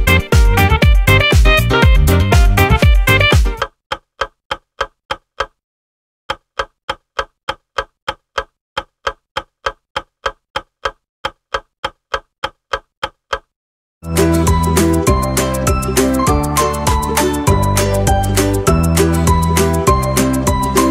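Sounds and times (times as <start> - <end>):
clock ticking: 2.9 - 5.6, 6.3 - 13.5.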